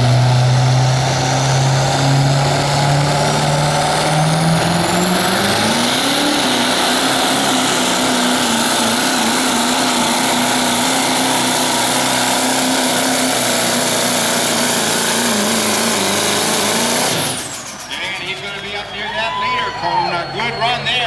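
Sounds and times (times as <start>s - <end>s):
diesel truck engine revving: 0.0s - 21.0s.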